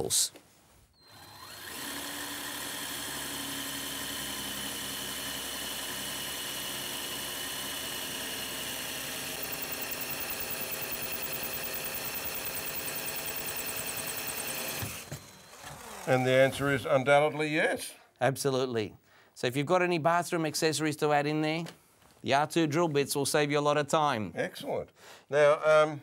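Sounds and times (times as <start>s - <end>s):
drill boring into tile: 1.0s - 16.8s.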